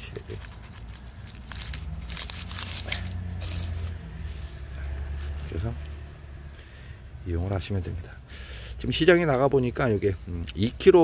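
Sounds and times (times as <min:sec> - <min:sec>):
dry leaves and soil crunching: 0:00.0 - 0:05.9.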